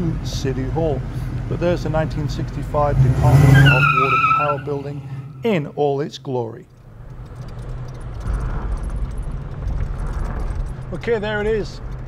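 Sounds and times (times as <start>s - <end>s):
car engine and road drone: 0.0s - 12.0s.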